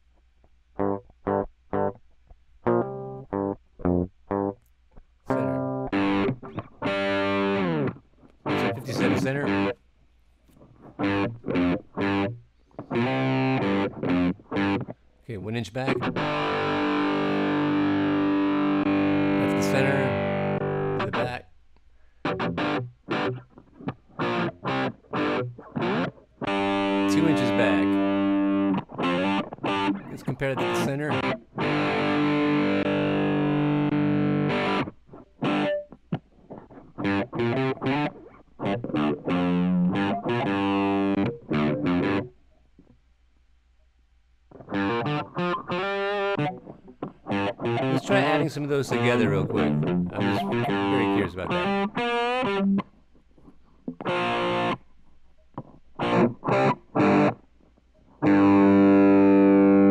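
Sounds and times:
distorted electric guitar chords: 2.6s - 4.6s, 5.3s - 9.8s, 10.9s - 15.0s, 15.8s - 21.5s, 22.2s - 42.3s, 44.5s - 52.9s, 53.9s - 54.8s, 55.6s - 57.5s, 58.2s - 59.9s.

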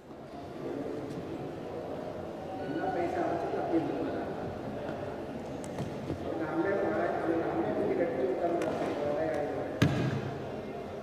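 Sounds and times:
murmur of distant voices: 0.0s - 11.0s.

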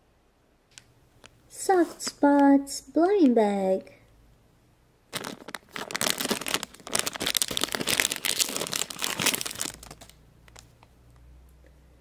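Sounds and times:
foil pouch crinkling and tearing: 5.1s - 10.8s.

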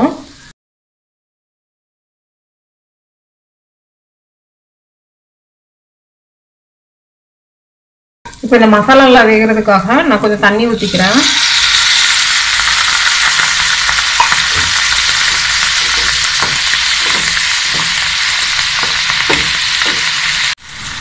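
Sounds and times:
potatoes sizzling in oil: 10.5s - 21.0s
water poured into hot pan: 10.8s - 21.0s
wooden spatula scraping pan: 14.5s - 20.6s.

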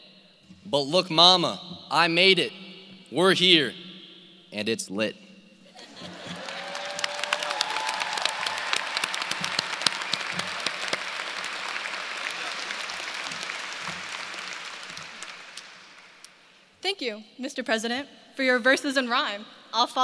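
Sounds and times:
audience applauding: 5.8s - 16.4s.

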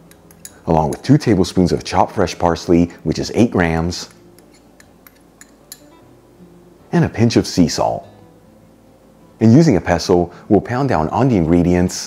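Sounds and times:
soft background music: 0.0s - 12.0s
glass bowl clinks: 4.8s - 6.0s.

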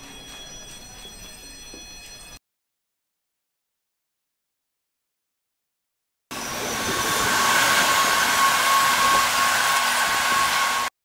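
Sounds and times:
high whine: 6.3s - 10.9s
subway train rushing noise: 6.3s - 10.9s.

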